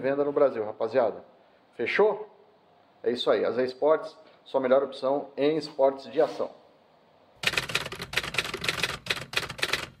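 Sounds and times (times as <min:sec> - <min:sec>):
typewriter keystroke clicks: 0:07.4 - 0:10.0.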